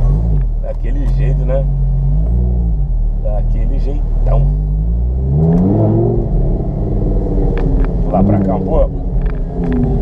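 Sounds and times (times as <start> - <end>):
car engine running: 0.0 - 10.0
low road rumble: 0.0 - 10.0.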